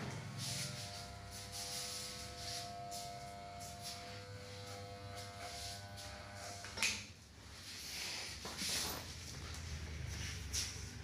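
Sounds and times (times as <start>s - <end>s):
electric hair clippers buzzing: 0.0s - 7.1s.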